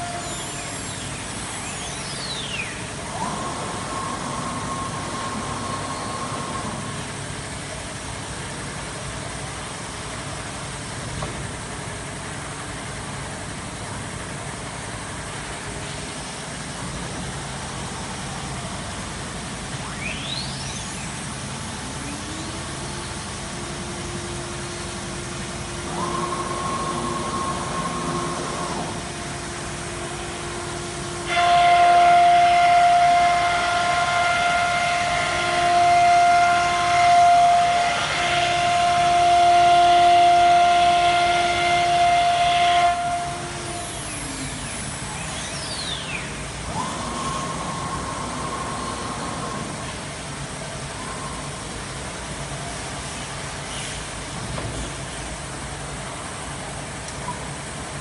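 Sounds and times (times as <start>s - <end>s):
router spindle whining: 21.5s - 44.7s.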